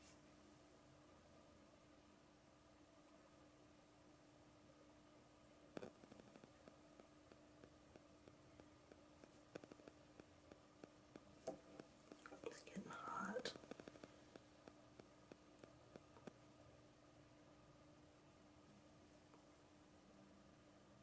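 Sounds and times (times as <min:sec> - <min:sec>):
low steady hum: 0:00.0 - 0:21.0
wood-burning pen crackling on wood: 0:05.7 - 0:16.7
soft whispered voice: 0:12.1 - 0:14.2.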